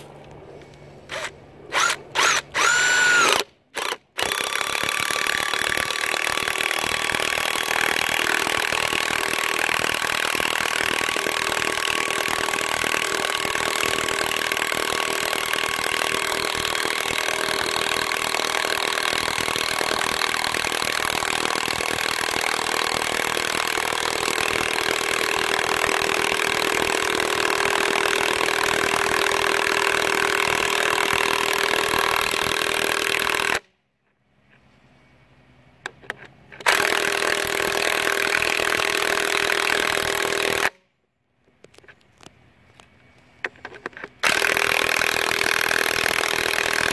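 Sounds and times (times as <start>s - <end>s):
impact wrench driving screw into wood: 1.1s - 33.6s, 36.1s - 40.8s, 43.6s - 46.9s.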